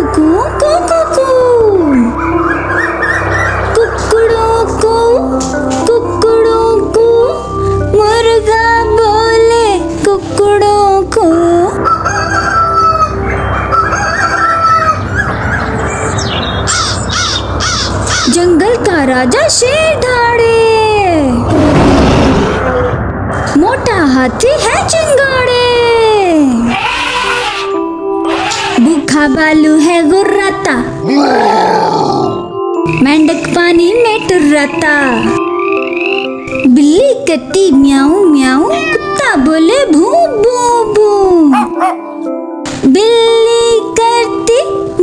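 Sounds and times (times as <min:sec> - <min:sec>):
background music: 0:00.0 - 0:45.0
rooster crowing: 0:11.9 - 0:15.0
bear growling: 0:21.5 - 0:23.0, 0:31.0 - 0:32.5.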